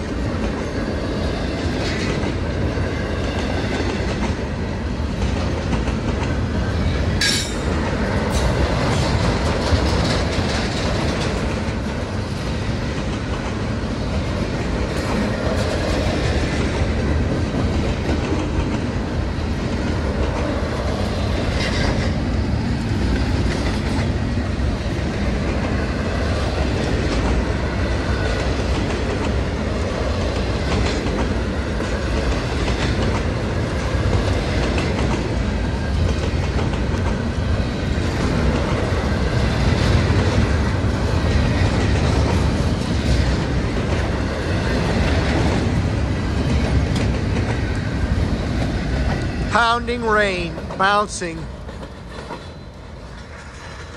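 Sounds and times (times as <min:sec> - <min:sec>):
wheels clicking over rail joints: 0:00.0 - 0:49.5, 0:51.5 - 0:53.9
train wheels rumbling on rail: 0:00.0 - 0:53.9.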